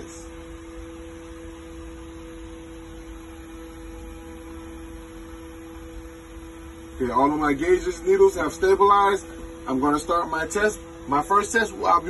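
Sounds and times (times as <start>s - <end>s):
steady electronic warning tone: 0.0s - 12.0s.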